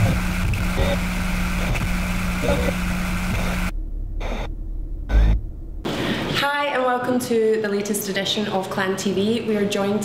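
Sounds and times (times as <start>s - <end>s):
short choppy pulses: 0.0s - 6.1s
dense noisy roar: 0.0s - 6.5s.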